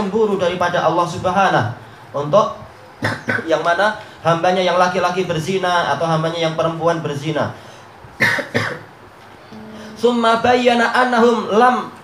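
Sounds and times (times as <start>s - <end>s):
man coughing: 3.0s - 3.5s, 8.2s - 8.9s
man humming: 9.5s - 10.2s
man speaking: 9.8s - 12.0s.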